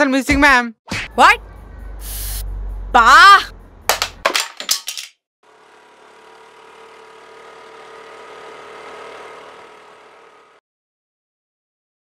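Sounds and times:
phone clattering on tiled floor: 0:03.9 - 0:05.2.

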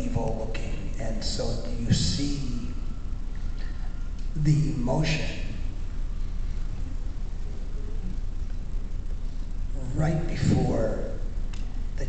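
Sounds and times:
low hall rumble: 0:00.0 - 0:12.0.

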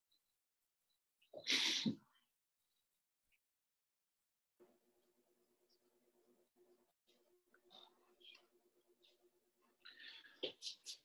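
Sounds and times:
person sneezing: 0:01.4 - 0:02.0.

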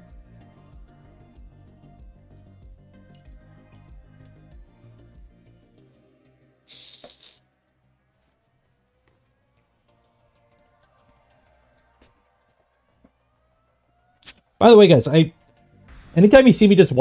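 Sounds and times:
metal screws rattling on plate: 0:06.7 - 0:07.4.

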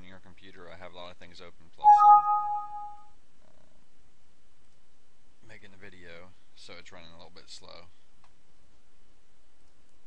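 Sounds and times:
computer alert chime: 0:01.8 - 0:03.0.

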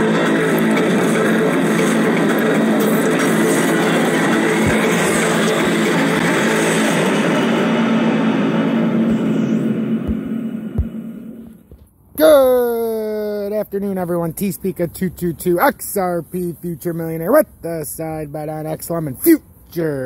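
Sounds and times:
loud dense music: 0:00.0 - 0:11.6
sound effects: 0:00.0 - 0:11.8.

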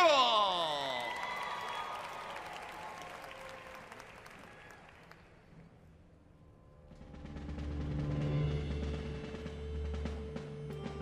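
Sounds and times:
crowd applause: 0:00.0 - 0:05.5.

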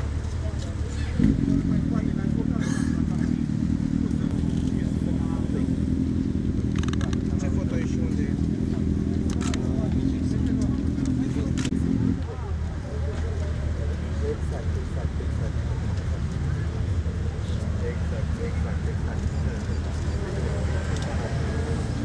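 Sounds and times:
motorcycle engines idling: 0:00.0 - 0:22.0.

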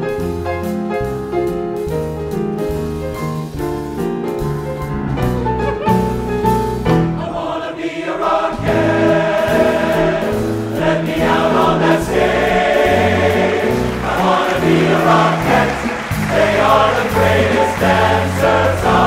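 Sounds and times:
men's chorus singing: 0:07.2 - 0:19.0
brassy show tune accompaniment: 0:08.5 - 0:19.0.

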